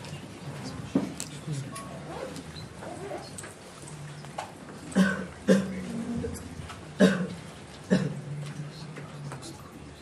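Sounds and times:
low murmuring voices: 0:00.0 - 0:10.0.

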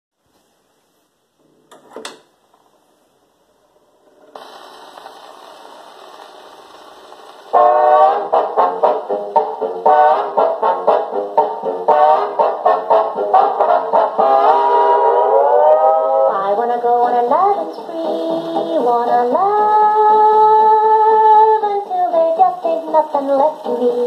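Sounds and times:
record surface hiss: 0:00.1 - 0:24.0
orchestra brass introduction: 0:07.5 - 0:16.4.

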